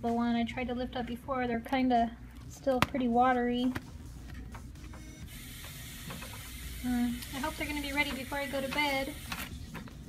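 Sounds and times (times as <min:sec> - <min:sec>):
food dehydrator fan running: 0:04.8 - 0:09.9.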